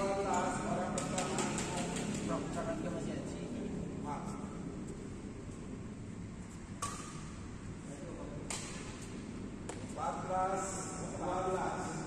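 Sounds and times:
murmur of sports hall: 0.0s - 12.0s
sharp taps and clicks: 0.3s - 2.3s.

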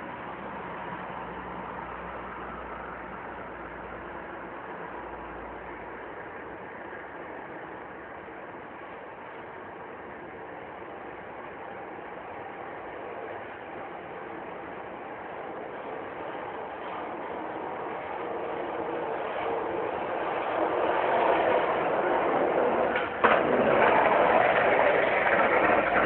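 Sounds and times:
engine-like mechanical noise: 0.0s - 26.0s.

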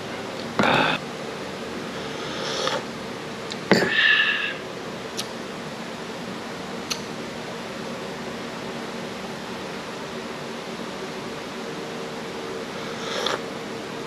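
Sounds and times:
air conditioner humming: 0.0s - 14.0s.

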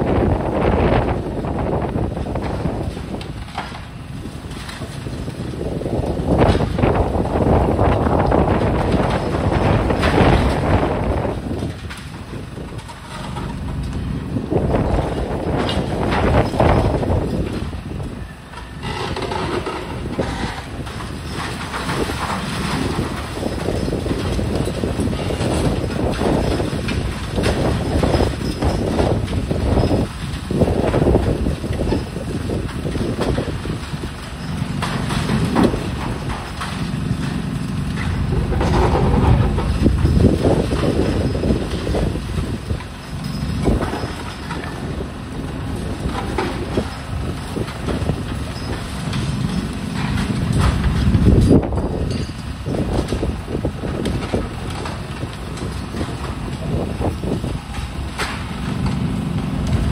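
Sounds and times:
diesel engine and hydraulics: 0.0s - 59.9s
concrete crunching and rubble falling: 2.1s - 59.9s.

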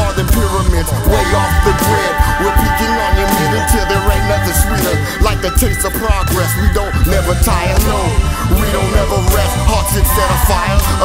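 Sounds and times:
man rapping over a beat: 0.0s - 11.0s.

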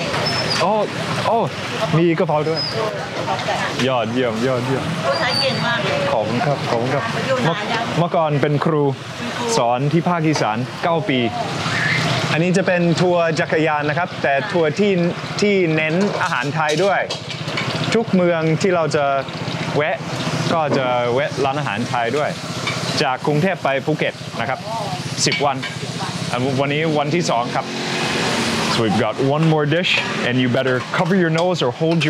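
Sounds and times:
people chattering: 0.0s - 17.1s, 23.0s - 32.0s.

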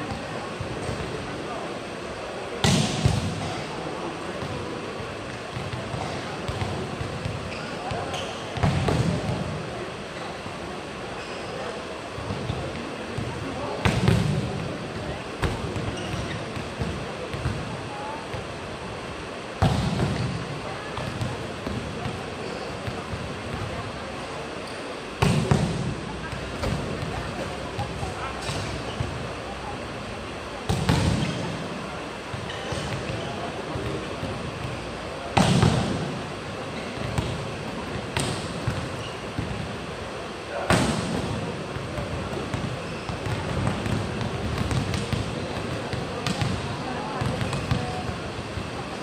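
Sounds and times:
arena crowd chatter: 0.0s - 49.0s
volleyball spike smacks: 2.6s - 3.3s.

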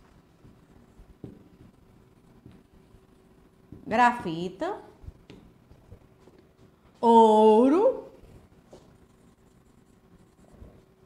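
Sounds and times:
marker writing on a whiteboard: 8.3s - 11.0s.

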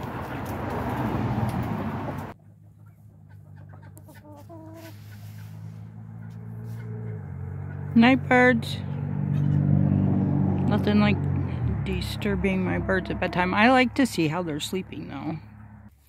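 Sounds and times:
chickens clucking: 2.1s - 8.0s.

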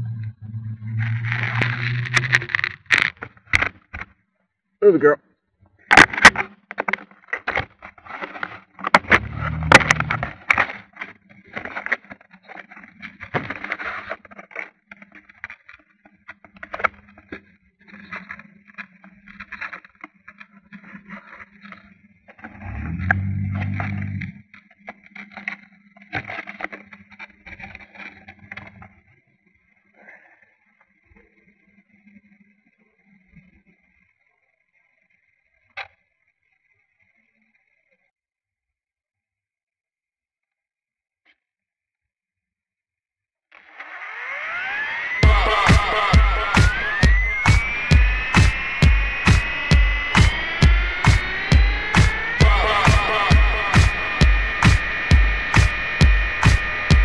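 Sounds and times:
electric motor buzzing drone: 0.0s - 2.6s, 9.1s - 10.3s, 22.6s - 24.4s, 43.7s - 57.0s
rushing noise: 0.0s - 2.8s, 44.3s - 57.0s
scraping and rustling on microphone: 0.0s - 4.0s, 7.5s - 28.9s
rc helicopter humming: 22.6s - 24.2s, 43.9s - 57.0s
faint steady hum: 22.6s - 24.4s.

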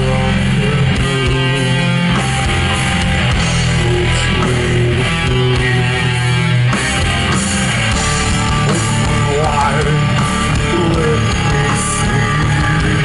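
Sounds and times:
metal band playing live: 0.0s - 13.0s.

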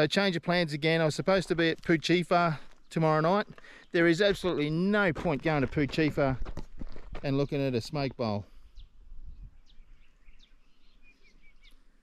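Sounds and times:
outdoor background noise: 0.0s - 12.0s
faint bird chirps: 8.6s - 12.0s.

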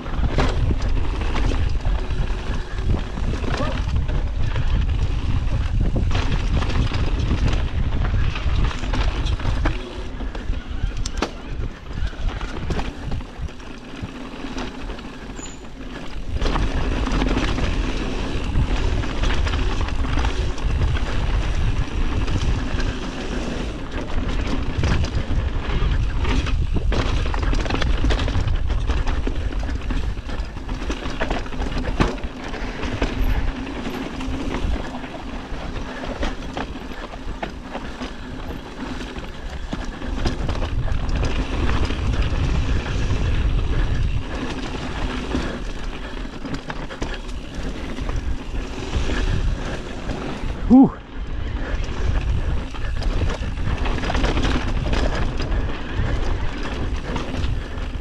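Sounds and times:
bike rattling and knocking: 0.0s - 58.0s
bike tyres rolling over dirt: 0.0s - 58.0s.

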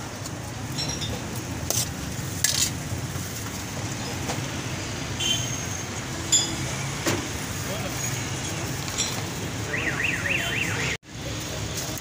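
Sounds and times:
street traffic rumble: 0.0s - 12.0s
metallic clinks of utensils and pots: 0.7s - 1.3s, 6.3s - 6.6s, 8.8s - 9.3s.

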